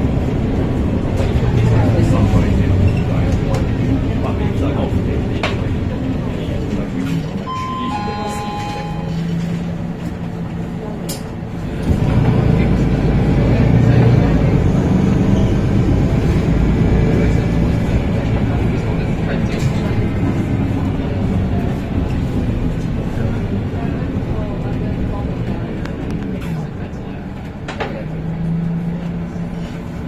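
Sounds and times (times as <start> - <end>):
bus diesel engine: 0.0 - 30.0.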